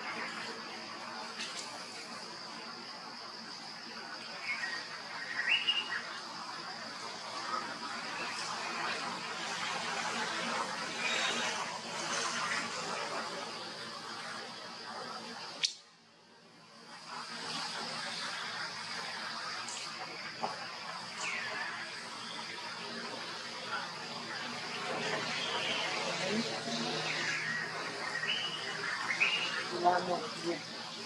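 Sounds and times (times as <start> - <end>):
steady hiss: 0.0 - 31.0
sharp click: 15.6 - 15.8.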